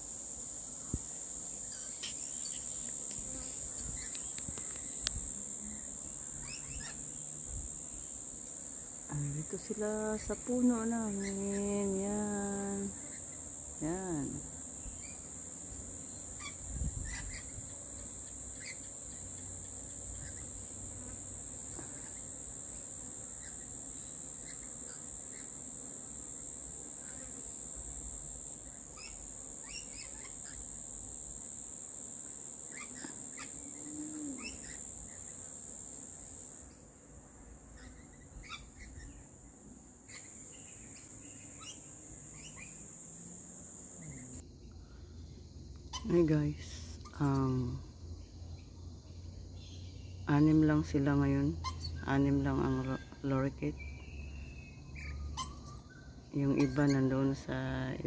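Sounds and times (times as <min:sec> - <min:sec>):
insects droning: 0:00.0 - 0:58.0
bird chirps: 0:53.8 - 0:57.3.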